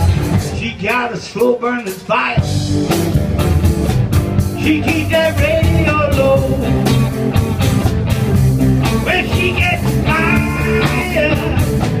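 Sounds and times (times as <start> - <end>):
bass guitar: 0.0 - 12.0
drums: 0.0 - 12.0
electric guitars: 0.0 - 12.0.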